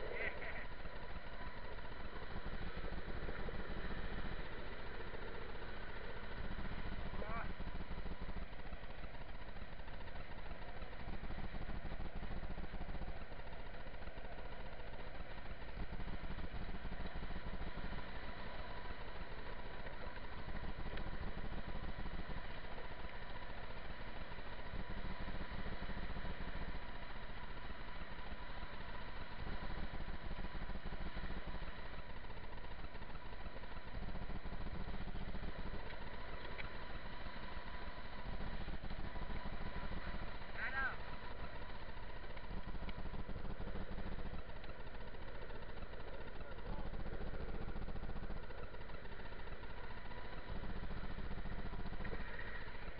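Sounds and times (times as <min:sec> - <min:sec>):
faint steady whine: 0:00.0 - 0:52.9.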